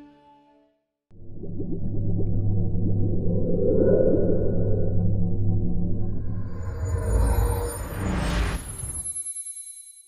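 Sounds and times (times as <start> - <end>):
low synthesized drone hum: 1.1 - 8.3.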